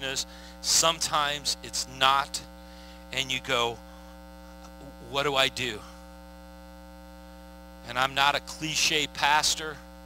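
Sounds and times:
man's voice: 0.0s - 2.5s, 3.1s - 3.8s, 4.8s - 6.0s, 7.8s - 9.8s
electrical mains hum: 0.0s - 10.0s.

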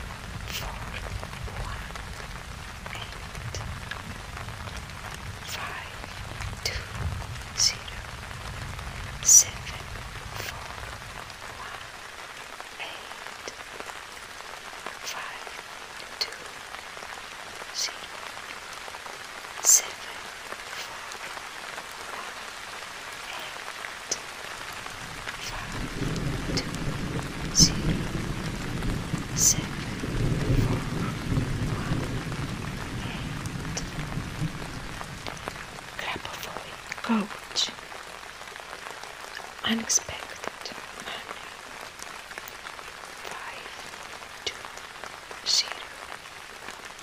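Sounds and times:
thunder rumbling: 0.0s - 12.0s, 24.9s - 37.6s
steady rain: 0.0s - 47.0s.

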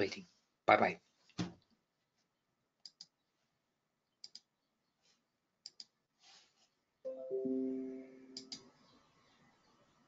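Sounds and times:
soft rustle: 5.0s - 5.3s, 6.1s - 6.8s.

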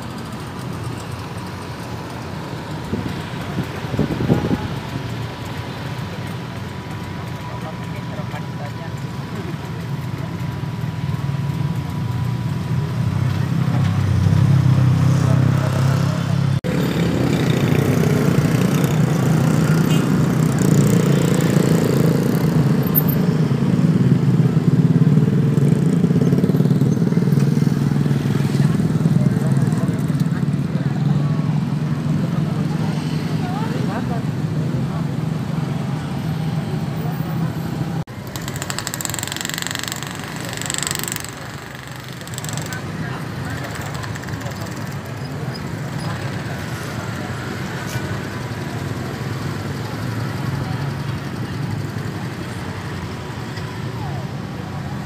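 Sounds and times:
crowd chatter: 1.0s - 10.7s, 25.1s - 55.0s
small engine running: 38.1s - 46.7s.

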